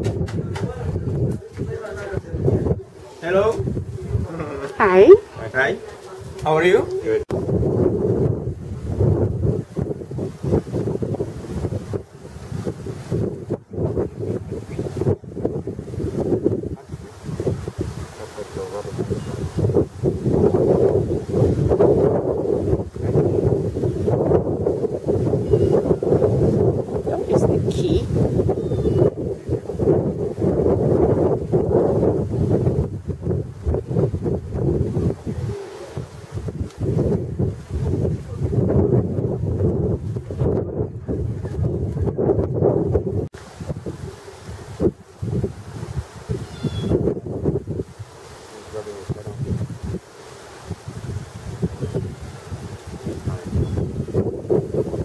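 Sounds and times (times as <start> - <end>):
wind buffeting microphone: 0.0 - 55.0.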